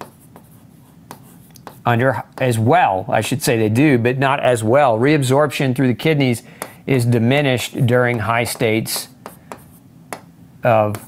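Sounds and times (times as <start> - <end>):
faint scratchy strokes and taps: 0.0 - 2.6, 7.9 - 11.0.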